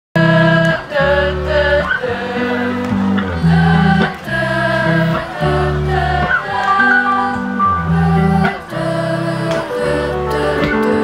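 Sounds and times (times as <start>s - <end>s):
live band music through pa: 0.2s - 11.0s.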